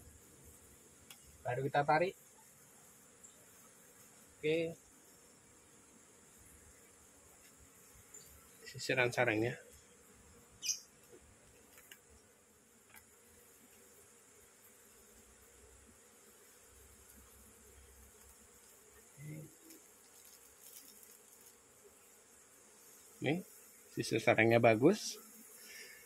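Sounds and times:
faint buzzing of honeybees: 0.0s - 26.0s.

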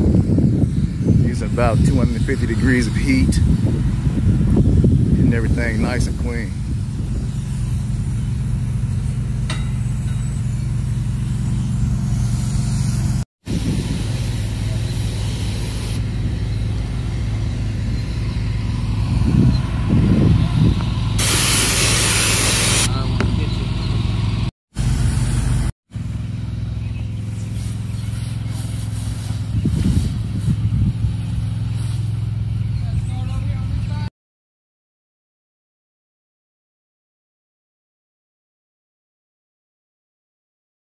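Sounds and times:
pressure washer engine running: 0.0s - 34.0s
spray wand hissing: 11.5s - 16.0s, 21.2s - 22.9s, 27.2s - 32.2s.

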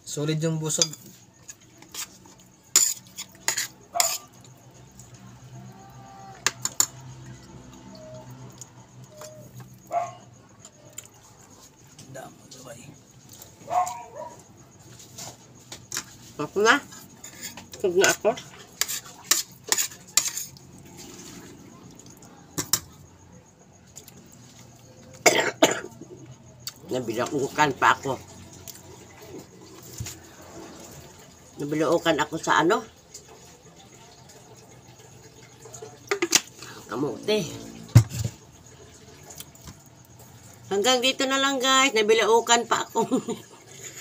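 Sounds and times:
metal spoon clinking on a plate: 0.7s - 2.1s, 2.7s - 4.5s, 18.8s - 20.6s
woman coughing: 25.2s - 26.0s.

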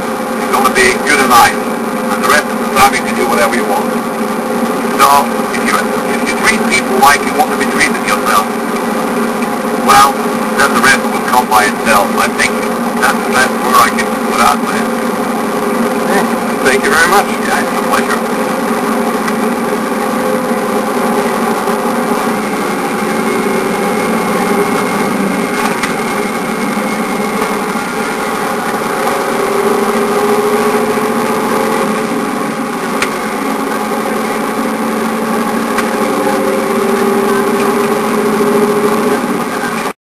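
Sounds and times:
heavy vehicle engine and road noise: 0.0s - 40.0s.

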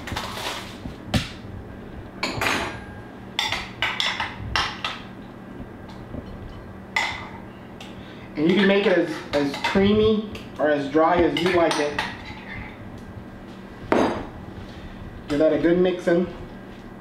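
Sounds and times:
plastic wrap rustling: 0.0s - 1.0s.

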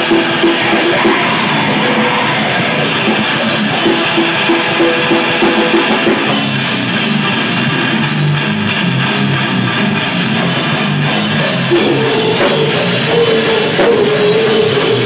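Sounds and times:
distorted guitar and bass riffing: 0.0s - 15.0s
drum kit: 0.0s - 15.0s.

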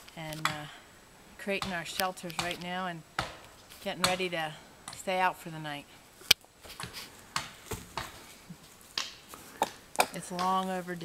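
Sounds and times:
dry sticks knocking and cracking: 1.6s - 4.2s, 6.2s - 10.8s.

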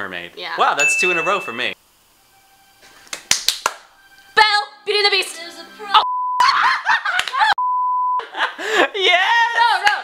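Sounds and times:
censor bleep tone: 6.0s - 6.4s, 7.6s - 8.2s
people laughing excitedly: 6.4s - 7.6s, 8.2s - 10.0s
people shouting: 9.1s - 10.0s.

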